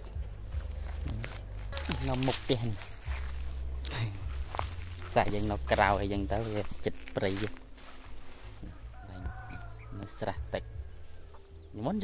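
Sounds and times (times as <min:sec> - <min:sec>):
low rumble: 0:02.4 - 0:07.2
rooster crowing: 0:08.4 - 0:11.5.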